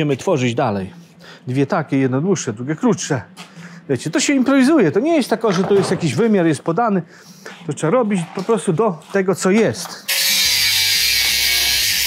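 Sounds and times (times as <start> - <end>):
angle grinder cutting steel: 10.1 - 12.0.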